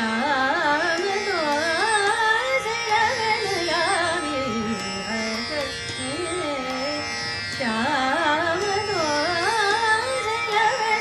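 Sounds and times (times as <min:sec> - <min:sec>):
tanpura drone: 0:00.0 - 0:11.0
woman singing ornamented vocal line: 0:00.0 - 0:11.0.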